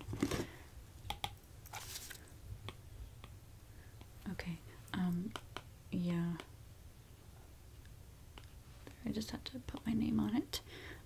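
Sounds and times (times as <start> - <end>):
light clicks and taps: 9.7 - 9.9.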